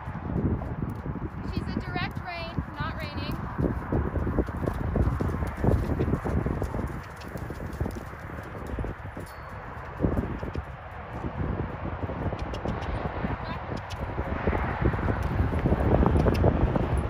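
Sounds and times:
horse hoofbeats on sand: 0.0s - 17.0s.

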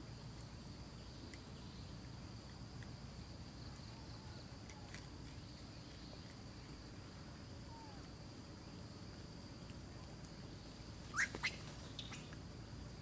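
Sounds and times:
high bird chirps: 11.1s - 12.4s.

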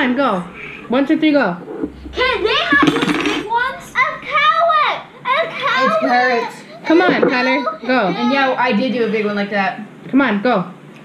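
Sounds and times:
sharp noisy burst: 1.6s - 4.8s
children shouting excitedly: 3.5s - 6.8s.

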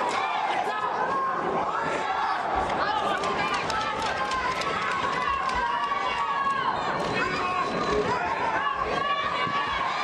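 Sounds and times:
spectators shouting and cheering: 0.0s - 10.0s.

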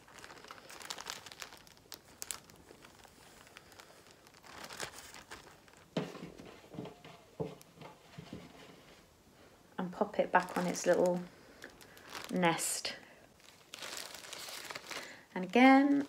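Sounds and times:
plastic bag crinkling: 0.0s - 7.4s, 9.9s - 16.0s.

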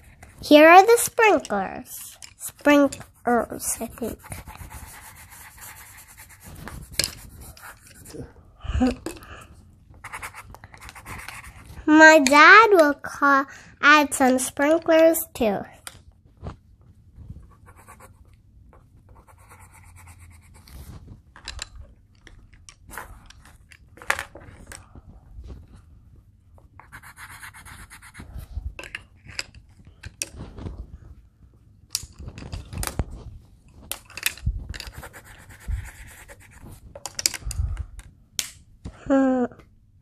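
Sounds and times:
pencils scratching on paper: 0.0s - 8.3s, 10.0s - 13.0s, 17.4s - 18.3s, 19.1s - 21.0s, 26.8s - 28.5s, 34.8s - 36.8s
pencils knocking on a table: 6.9s - 7.9s, 21.4s - 24.8s, 33.9s - 35.2s.

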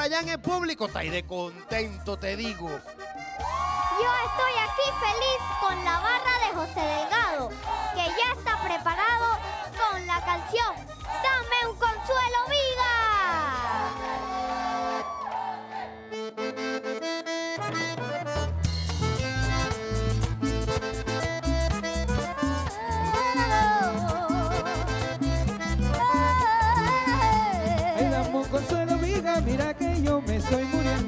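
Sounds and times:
button accordion: 0.1s - 15.0s, 15.6s - 31.0s
bass and percussion dance beat: 3.4s - 14.8s, 18.5s - 31.0s.

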